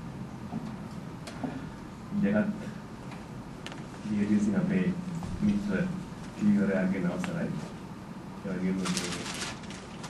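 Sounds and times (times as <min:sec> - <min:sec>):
man speaking: 0:04.0 - 0:07.8, 0:08.4 - 0:09.2.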